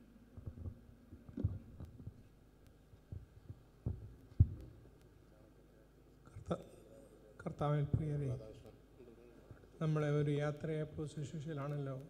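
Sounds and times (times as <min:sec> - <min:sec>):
faint steady hum: 0:00.0 - 0:12.0
microphone handling thumps: 0:03.1 - 0:04.8.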